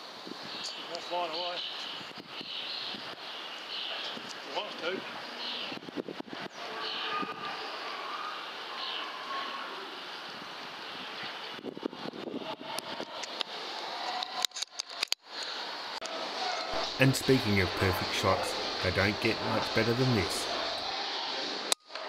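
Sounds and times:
outdoor background hiss: 0:00.0 - 0:22.0.

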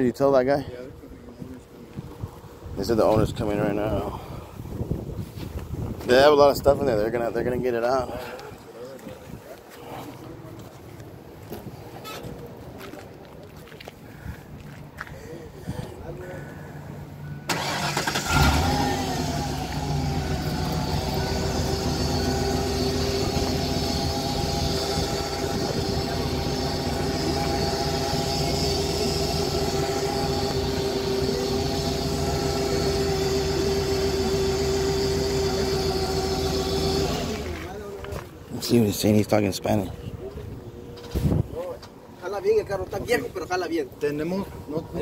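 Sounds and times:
car engine idling: 0:16.2 - 0:37.8
car starter cranking: 0:17.5 - 0:37.7.

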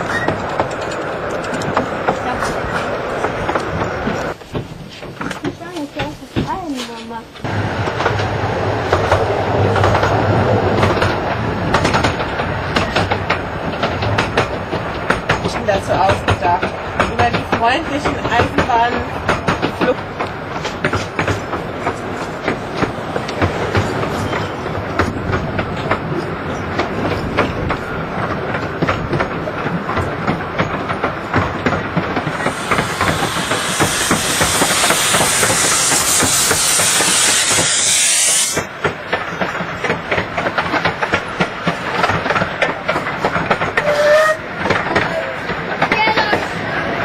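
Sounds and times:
steam train wheels clattering: 0:00.0 - 0:47.0
loud steam hiss: 0:32.2 - 0:38.7.

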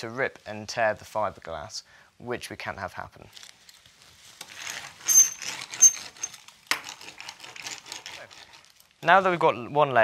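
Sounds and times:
roller squeaking: 0:04.6 - 0:06.4.

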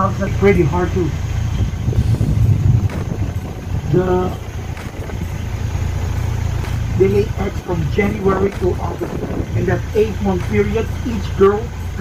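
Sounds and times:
bus engine rumbling: 0:00.0 - 0:12.0.

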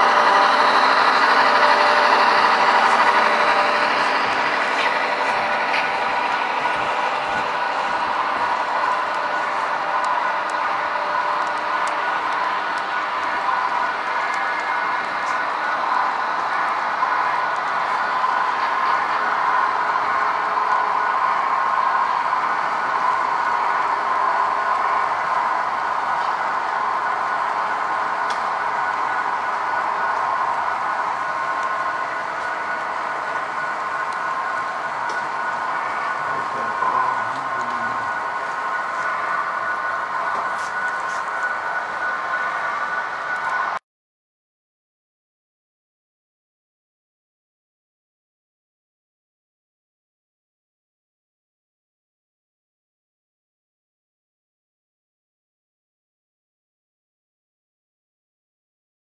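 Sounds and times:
faint whine: 0:00.0 - 0:43.8
model train wheels on rails: 0:00.0 - 0:43.8.

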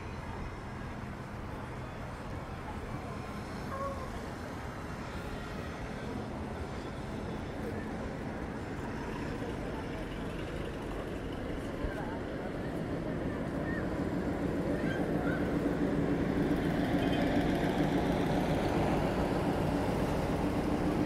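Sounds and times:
buses driving past: 0:00.0 - 0:21.0
road traffic noise: 0:00.0 - 0:21.0.

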